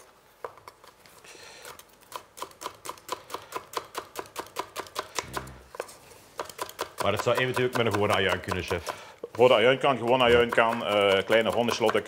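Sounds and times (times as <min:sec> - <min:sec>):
knife chopping on wooden board: 0:06.4 - 0:09.0, 0:10.1 - 0:12.0.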